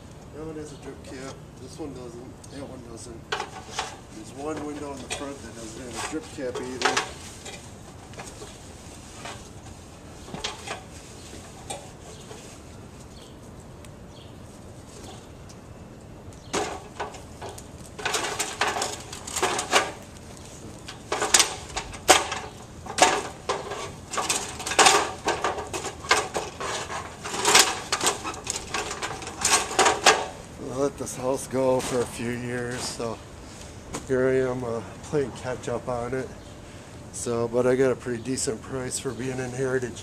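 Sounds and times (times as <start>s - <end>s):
knocks on ladder rungs: 21.1s - 30.4s.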